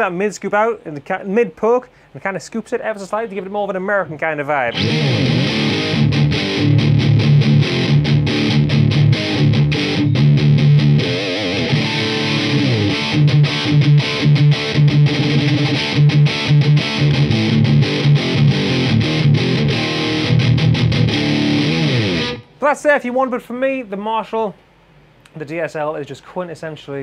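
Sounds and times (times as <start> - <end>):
distorted electric guitar riff: 4.7 - 22.5.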